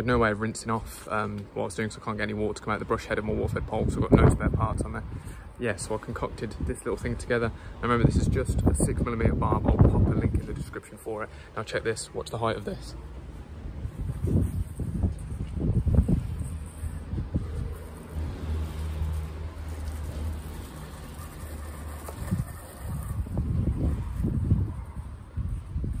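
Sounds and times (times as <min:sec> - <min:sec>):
wind buffeting microphone: 0:03.3 - 0:05.4, 0:06.5 - 0:10.8, 0:13.6 - 0:18.6, 0:21.4 - 0:26.0.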